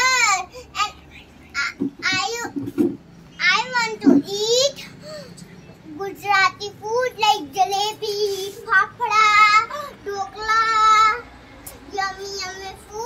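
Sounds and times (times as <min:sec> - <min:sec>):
girl singing: 0:00.0 - 0:02.7, 0:03.4 - 0:05.0, 0:05.8 - 0:13.0.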